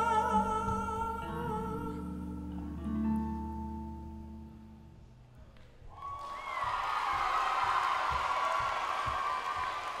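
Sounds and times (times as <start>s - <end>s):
audience cheering and applauding: 5.9s - 10.0s.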